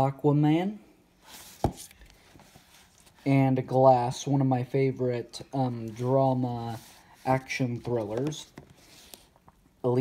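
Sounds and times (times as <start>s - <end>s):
plastic cases rustling: 5.8s - 9.7s.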